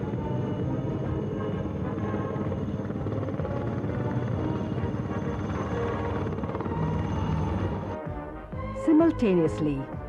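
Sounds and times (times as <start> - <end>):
helicopter engines humming: 0.0 - 10.0
helicopter rotors beating: 0.0 - 10.0.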